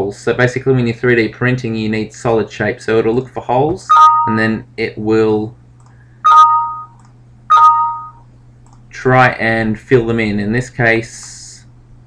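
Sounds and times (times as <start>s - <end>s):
two-tone system alert chime: 3.9s - 4.5s, 6.3s - 8.2s.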